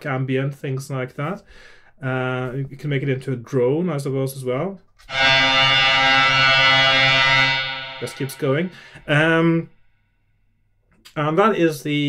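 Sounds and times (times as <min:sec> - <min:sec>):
synthesizer bowed string drone: 0:05.1 - 0:09.6.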